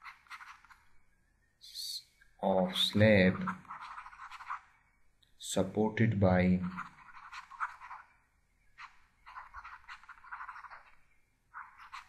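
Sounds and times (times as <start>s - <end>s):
stylus scratching on tablet: 3.2s - 4.6s, 6.6s - 8.0s, 8.8s - 10.9s, 11.6s - 12.0s.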